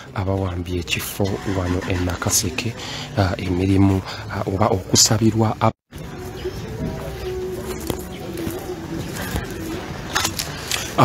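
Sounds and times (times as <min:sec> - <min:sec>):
outdoor background noise: 0:00.0 - 0:11.0
faint voices: 0:06.0 - 0:11.0
dove cooing: 0:06.1 - 0:11.0.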